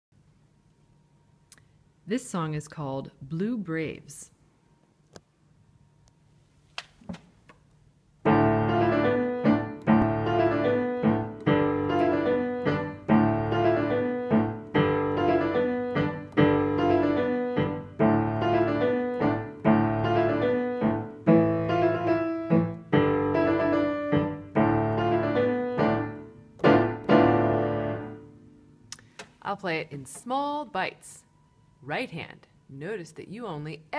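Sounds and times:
piano teaching piece: 8.2 - 28.8.

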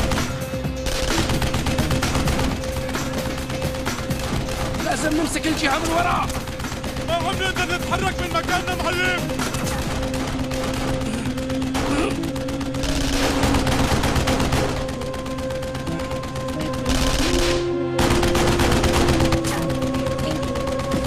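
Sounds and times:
dramatic music score: 0.0 - 21.0
rapid gunfire: 0.0 - 21.0.

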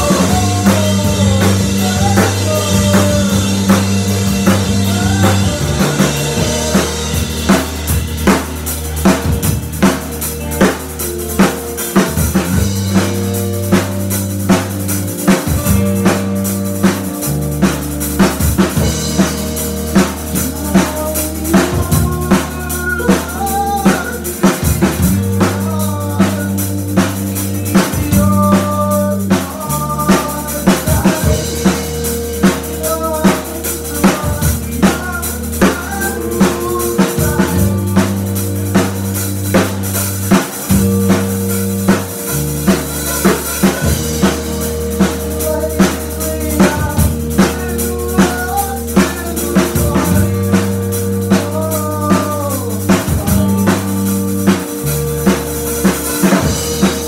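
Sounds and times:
person singing: 0.0 - 9.4, 18.4 - 39.7, 43.0 - 57.0
drum kit beat: 0.0 - 57.0
electric bass notes: 0.0 - 57.0.

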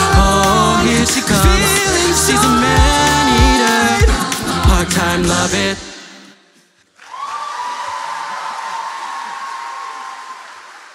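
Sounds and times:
audience applause and cheering: 7.0 - 10.9
long high cheer: 7.0 - 10.9.

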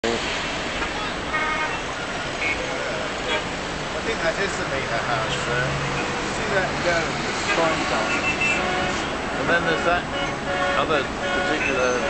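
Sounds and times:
road traffic noise: 0.0 - 12.0
car horn toots: 0.8 - 3.5, 7.5 - 12.0.

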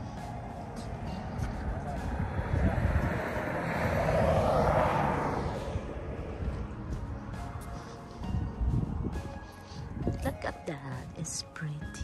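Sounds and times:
vehicle passing by: 0.0 - 10.2.

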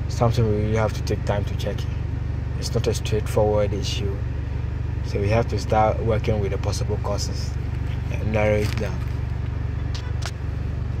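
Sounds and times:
low mechanical rumble: 0.0 - 11.0.

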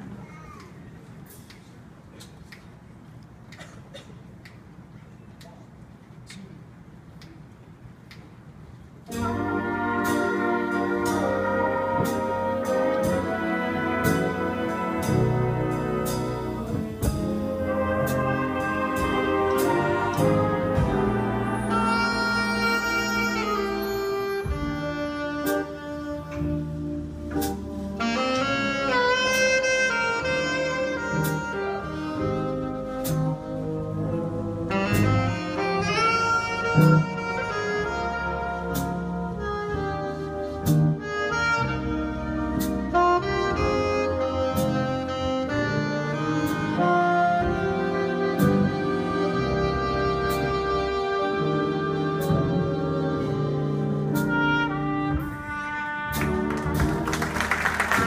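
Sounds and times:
drum kit keeping time: 9.1 - 40.0, 52.2 - 58.0
saxophone and trumpet melody: 9.1 - 58.0.

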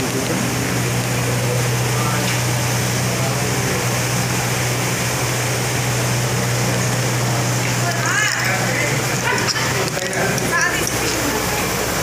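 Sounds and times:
low constant hum: 0.0 - 12.0.

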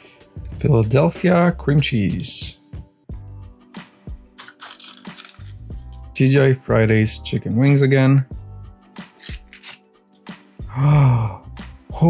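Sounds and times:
soft background music: 0.0 - 12.0
plastic capsule clicking and cracking: 4.3 - 6.0.

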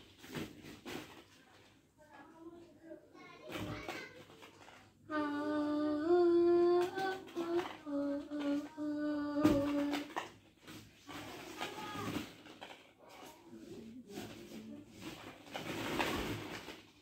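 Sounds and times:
high voice singing wordless notes: 5.1 - 10.1.

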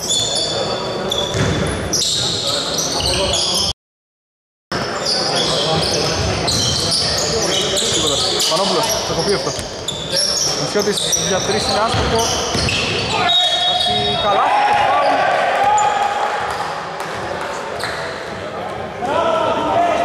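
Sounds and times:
sneaker squeaks: 0.0 - 3.7, 4.8 - 14.4, 17.8 - 18.2
basketball bouncing: 1.3 - 1.6, 11.8 - 12.8
players' voices echoing: 4.8 - 20.0.

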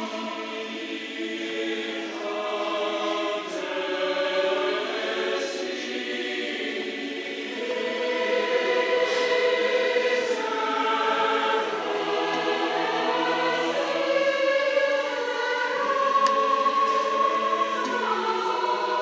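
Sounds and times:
choir singing slowly: 0.0 - 19.0.

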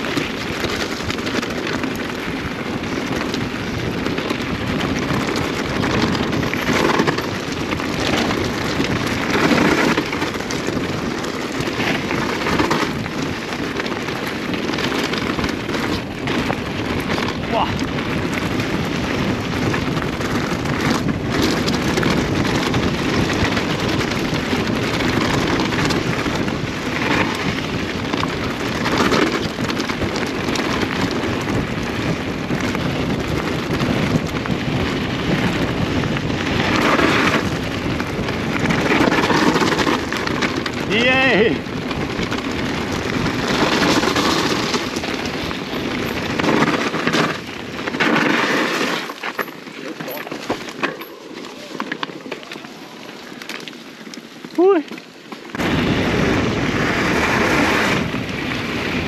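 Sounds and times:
wind rushing over microphone: 0.0 - 53.5, 55.5 - 59.0
bike tyre noise: 0.0 - 59.0.

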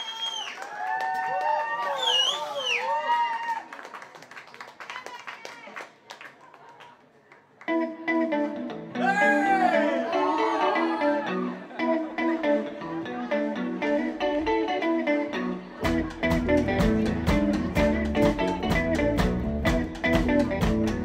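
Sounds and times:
bass guitar: 7.7 - 21.0
electric guitar melody: 7.7 - 21.0
drums: 15.8 - 21.0.

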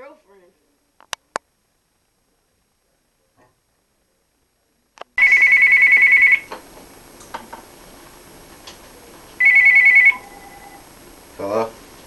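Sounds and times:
phone ringing electronic trill: 5.2 - 6.5, 9.4 - 10.9.

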